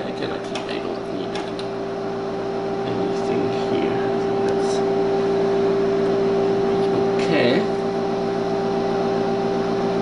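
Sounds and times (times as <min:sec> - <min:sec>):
steady electrical hum: 0:00.0 - 0:10.0.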